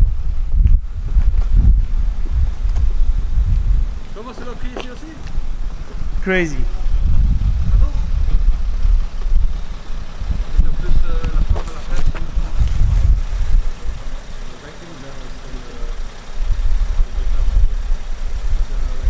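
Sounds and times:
loud uneven low rumble: 0.0 - 19.0
faint voices: 4.1 - 19.0.

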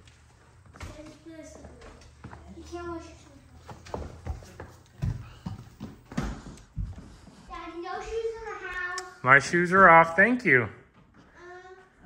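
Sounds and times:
footsteps on wooden floor: 0.0 - 8.6.

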